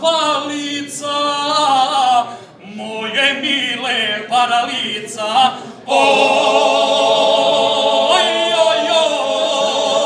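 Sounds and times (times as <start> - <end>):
group singing a cappella: 0.3 - 10.0.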